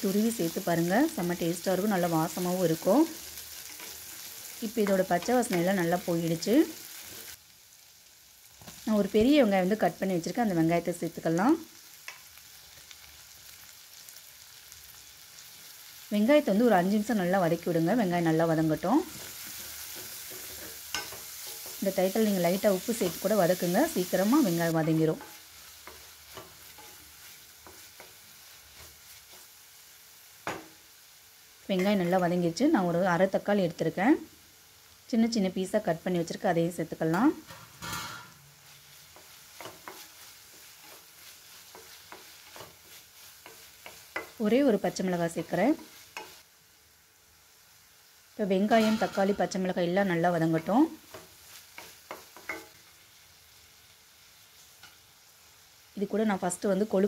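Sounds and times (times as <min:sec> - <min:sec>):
onions sizzling in oil: 0:00.0 - 0:57.0.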